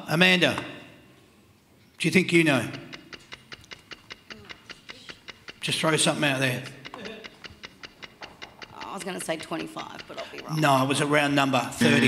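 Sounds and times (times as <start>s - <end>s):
countdown clock ticking: 2.0s - 12.0s.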